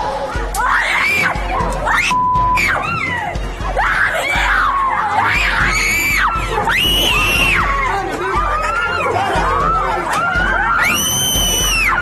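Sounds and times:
women screaming: 0:00.5 - 0:12.0.

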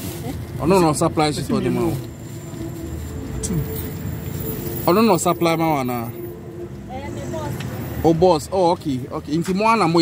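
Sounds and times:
low outdoor rumble: 0:00.0 - 0:09.4.

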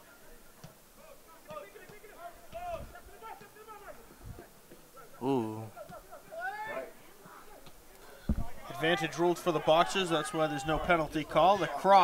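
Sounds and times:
distant players shouting: 0:01.0 - 0:12.0.

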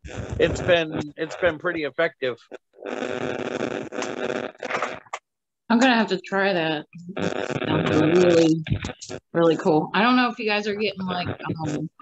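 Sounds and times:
static hiss: 0:00.0 - 0:12.0.

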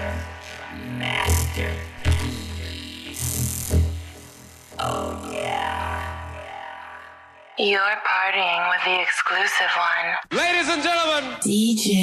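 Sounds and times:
buzzing synth with gliding pitch: 0:00.0 - 0:07.6
low bass drone: 0:00.0 - 0:07.6.

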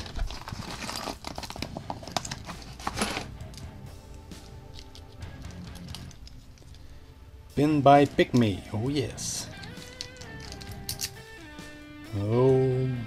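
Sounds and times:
paper envelope rustling: 0:00.0 - 0:03.3
small metal pieces clicking: 0:00.0 - 0:06.9, 0:09.5 - 0:11.3
faint background music: 0:00.0 - 0:13.0.

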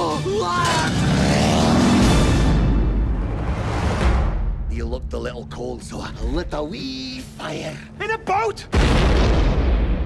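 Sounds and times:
man shouting: 0:00.0 - 0:01.5
dramatic music: 0:00.0 - 0:10.0.

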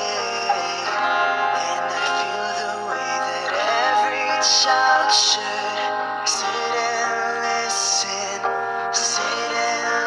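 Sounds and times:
man singing: 0:00.0 - 0:10.0
soft backing music: 0:00.0 - 0:10.0.

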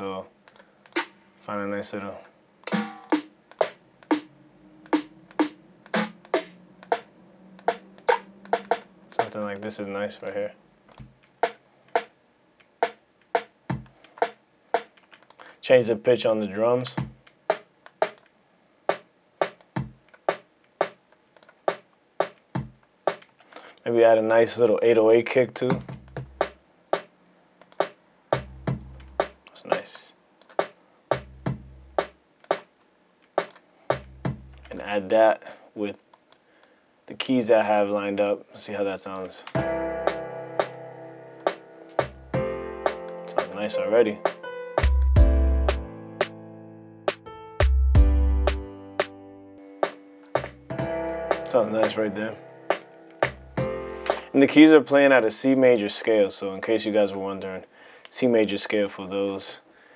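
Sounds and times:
sustained keyboard chords: 0:02.6 - 0:12.1, 0:27.7 - 0:29.5, 0:39.5 - 0:54.6
drum machine hits: 0:02.7 - 0:04.3, 0:04.9 - 0:09.4, 0:12.8 - 0:14.9, 0:16.9 - 0:18.2, 0:18.9 - 0:21.0, 0:21.7 - 0:23.2, 0:25.7 - 0:27.1, 0:27.8 - 0:29.4, 0:30.6 - 0:32.7, 0:33.9 - 0:34.5, 0:41.5 - 0:43.0, 0:50.4 - 0:52.0, 0:52.7 - 0:54.3
kick and snare drum beat: 0:12.8 - 0:14.9, 0:17.0 - 0:18.2, 0:18.9 - 0:21.0, 0:21.7 - 0:23.2, 0:27.8 - 0:29.4, 0:30.6 - 0:32.6, 0:33.9 - 0:34.5.

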